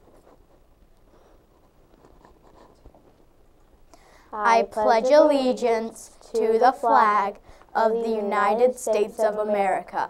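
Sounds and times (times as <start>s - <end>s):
faint rustling: 0.0s - 4.4s.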